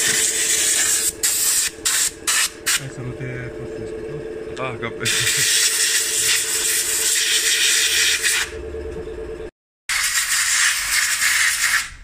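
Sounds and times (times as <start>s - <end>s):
compressed air hissing: 0.0s - 2.8s
steady low hum: 0.0s - 9.5s.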